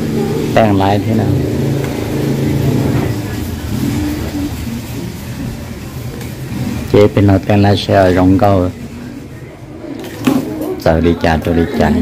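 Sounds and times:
soft voices: 2.4 - 12.0.

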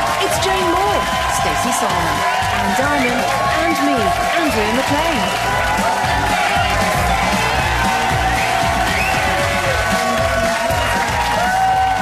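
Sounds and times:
audience applauding and cheering: 0.0 - 12.0
upbeat music: 0.0 - 12.0.

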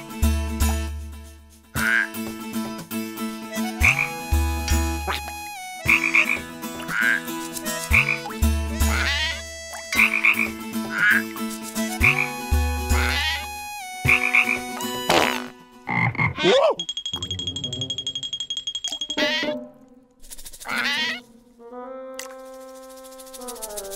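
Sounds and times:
cartoon frog croaking: 1.8 - 2.1, 7.9 - 11.3, 12.9 - 13.5, 14.1 - 16.8, 20.6 - 21.2
high ringing tone with pulses: 16.8 - 19.4.

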